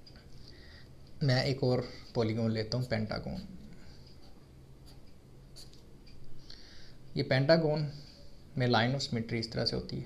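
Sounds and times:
pen scratching on paper: 4.2 - 5.8.

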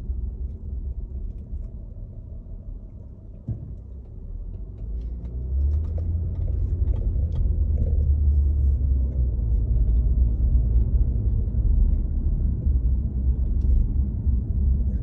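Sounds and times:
car road and engine rumble: 0.0 - 15.0.

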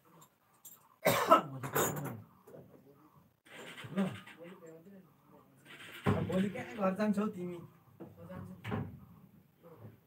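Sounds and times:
person coughing: 1.0 - 2.1.

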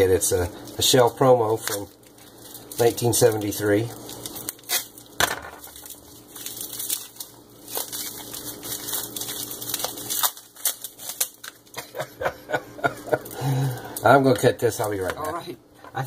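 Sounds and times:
plastic and tape crinkling: 0.0 - 12.1, 12.8 - 15.4.

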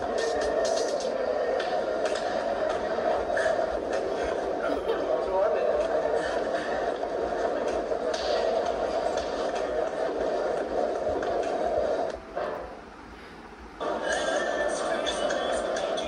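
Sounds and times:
muffled video soundtrack with voices: 0.0 - 16.0.

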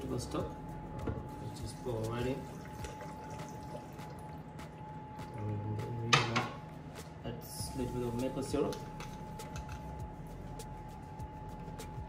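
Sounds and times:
high-pitched electrical hum: 0.0 - 12.0
low hum: 0.0 - 12.0.

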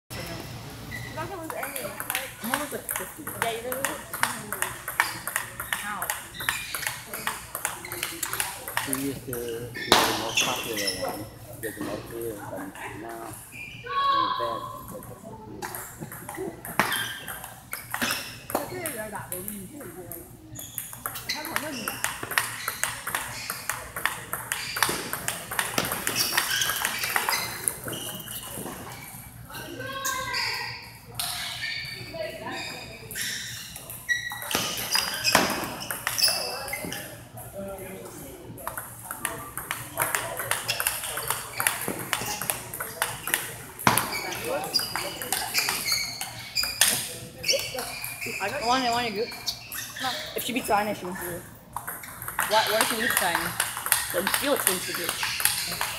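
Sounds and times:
table tennis balls clicking: 1.4 - 10.1, 15.6 - 29.0, 33.2 - 37.1, 38.6 - 49.8, 51.7 - 55.9.

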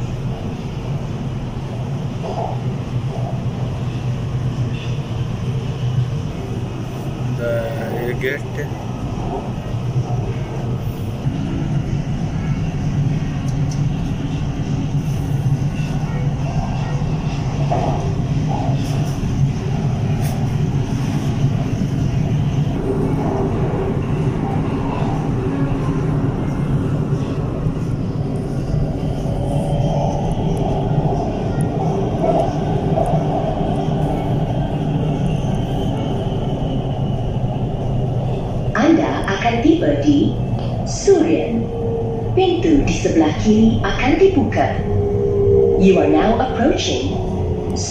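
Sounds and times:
high train whine: 0.0 - 47.9
train rumble with motor hum: 0.0 - 47.9.

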